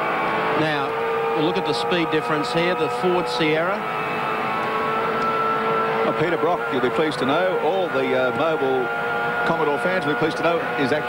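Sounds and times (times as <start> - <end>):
race car engine at high revs: 0.0 - 11.0.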